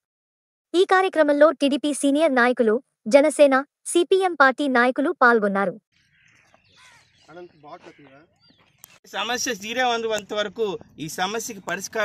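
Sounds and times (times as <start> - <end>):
crows cawing: 6.0 - 8.8.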